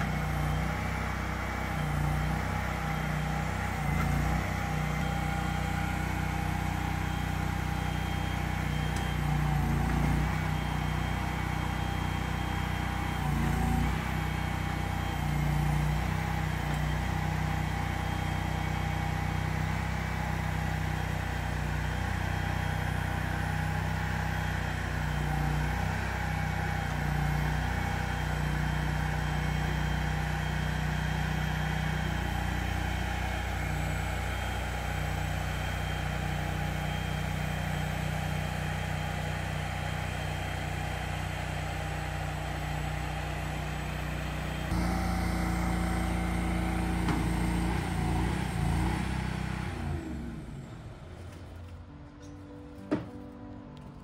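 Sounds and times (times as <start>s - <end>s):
truck engine running: 0.0s - 54.0s.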